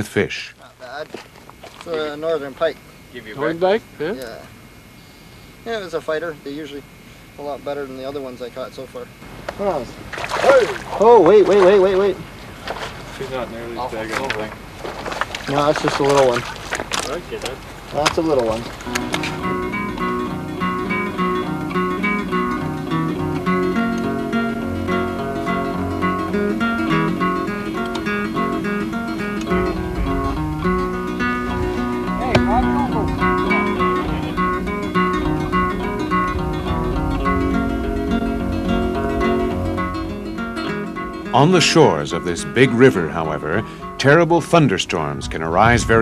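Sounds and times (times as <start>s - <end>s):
acoustic guitar music: 0.0s - 46.0s.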